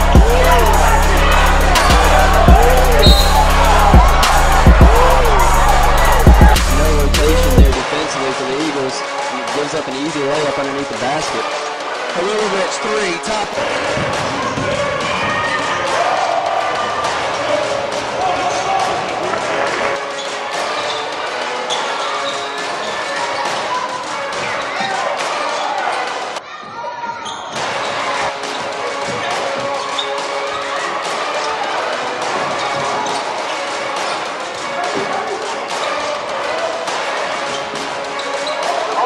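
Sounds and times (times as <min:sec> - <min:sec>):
hubbub of crowd and players: 0:00.0 - 0:39.0.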